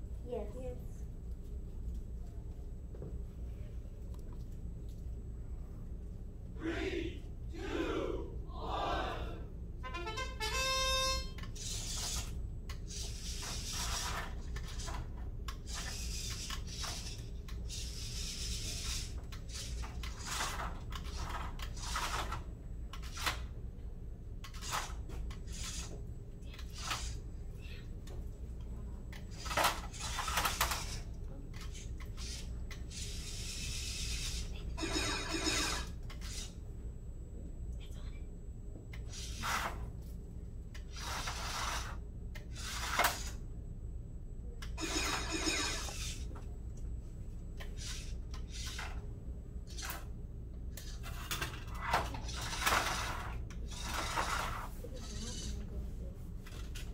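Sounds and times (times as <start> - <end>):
low room hum: 0.0 - 56.9
robot parts knocking and scraping: 11.6 - 22.4, 29.3 - 36.5, 44.8 - 46.3, 50.8 - 55.6
robot rattling: 11.6 - 23.4, 24.4 - 25.9, 26.5 - 27.2, 29.2 - 36.6, 42.5 - 43.3, 44.7 - 46.3, 47.6 - 49.0, 50.8 - 55.7.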